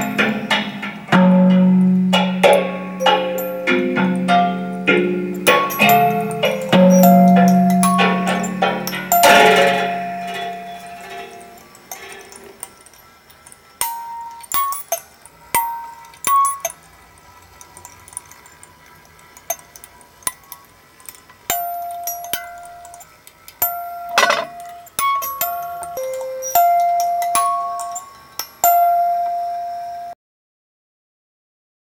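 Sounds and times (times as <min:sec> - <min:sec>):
loud clanging hit: 0:00.0 - 0:11.6, 0:24.2 - 0:24.8
thumb piano notes: 0:00.0 - 0:12.5, 0:21.5 - 0:30.1.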